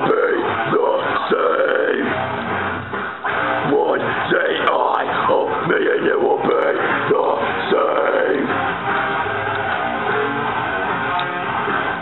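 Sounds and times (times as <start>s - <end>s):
heavy metal guitars and drums: 0.0s - 12.0s
man growling vocals: 3.6s - 8.5s.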